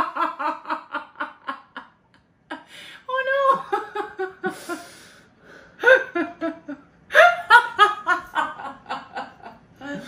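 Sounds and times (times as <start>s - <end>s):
people laughing hard: 6.1s - 10.0s.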